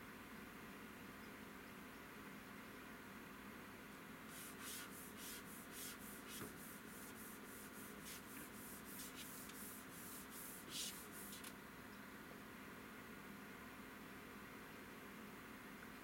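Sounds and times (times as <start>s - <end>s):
hands brushing and rubbing: 4.3s - 11.5s.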